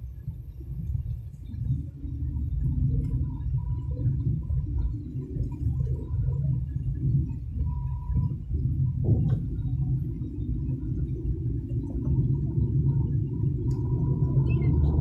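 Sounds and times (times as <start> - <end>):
car engine rumble: 0.0 - 15.0
faint wavering hum: 0.0 - 15.0
tyres on the road: 0.0 - 15.0.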